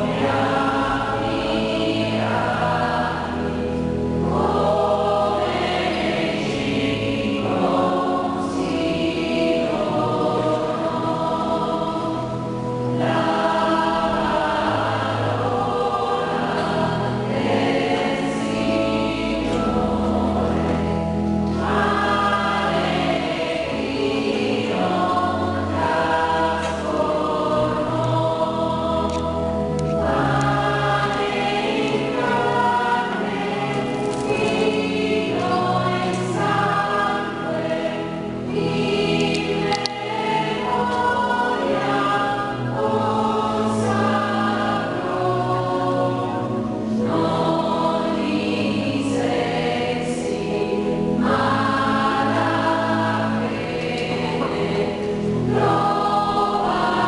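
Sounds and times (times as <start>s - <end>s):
church choir singing a hymn: 0.0s - 57.0s.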